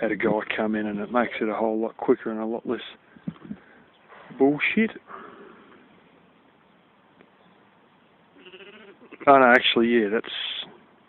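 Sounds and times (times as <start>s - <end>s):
sheep bleating: 8.4s - 9.4s.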